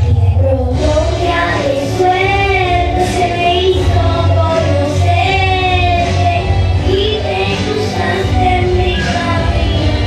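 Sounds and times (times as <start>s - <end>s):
accompanying music: 0.0s - 10.0s
girl singing into microphone: 0.0s - 10.0s.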